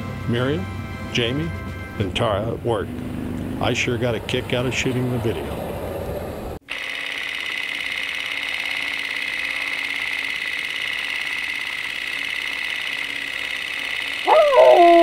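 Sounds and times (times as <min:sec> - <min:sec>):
outdoor sound: 0:00.0 - 0:15.0.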